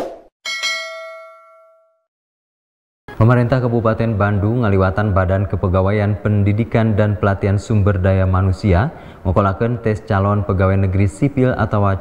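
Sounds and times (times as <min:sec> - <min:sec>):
bell chime: 0:00.5 - 0:02.1.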